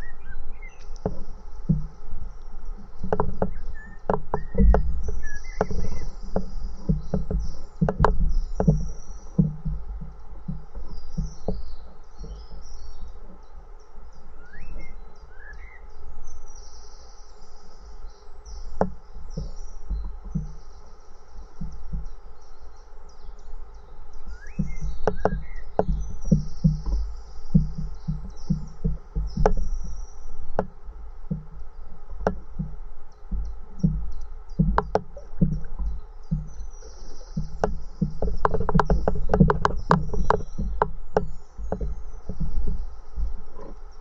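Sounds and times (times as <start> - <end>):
small birds chirping: 0.0 - 44.0
steady low rumble: 0.0 - 44.0
low knocks and thumps: 0.9 - 13.4, 18.7 - 20.8, 21.4 - 22.2, 24.2 - 44.0.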